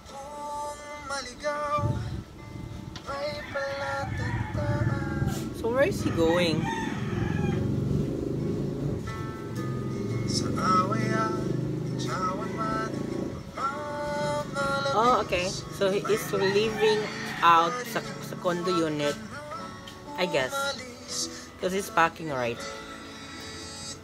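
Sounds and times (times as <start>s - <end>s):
man singing: 0.0s - 6.7s, 10.2s - 24.0s
acoustic guitar: 0.0s - 24.0s
rooster crowing: 3.1s - 8.2s, 12.0s - 13.2s, 15.8s - 19.5s.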